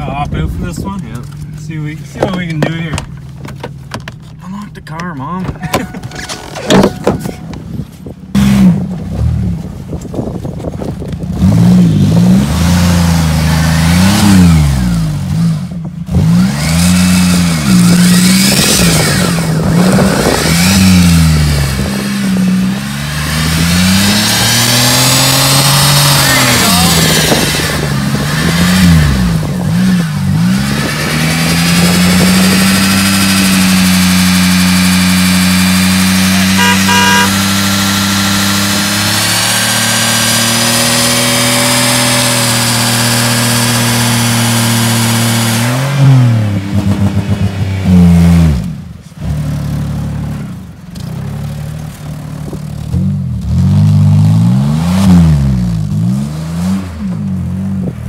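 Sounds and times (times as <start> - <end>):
car engine revving without muffler: 8.3 - 9.6, 11.3 - 50.6, 51.2 - 58.0.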